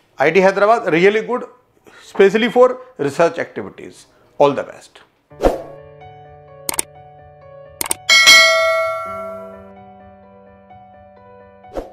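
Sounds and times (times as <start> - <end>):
soft background music: 5.3 - 11.9
bell chime notification: 8.1 - 9.7.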